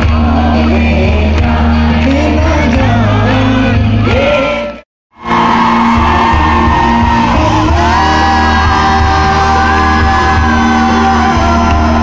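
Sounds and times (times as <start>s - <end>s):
live rock music: 0.0s - 12.0s
singer holding long notes: 0.0s - 12.0s
crowd shouting: 5.2s - 12.0s.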